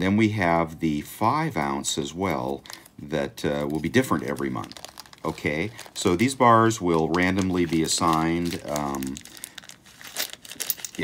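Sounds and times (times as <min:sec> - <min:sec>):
plastic packaging crinkling: 0:02.0 - 0:11.0.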